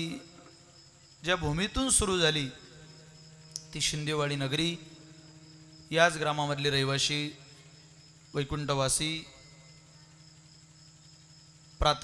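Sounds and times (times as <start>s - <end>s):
faint electrical hum: 0.0s - 12.0s
high whine from sound system: 0.0s - 12.0s.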